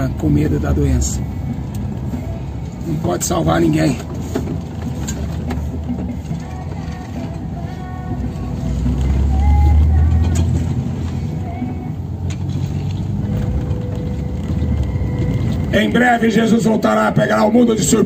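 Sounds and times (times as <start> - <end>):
car engine and road rumble: 0.0 - 18.0.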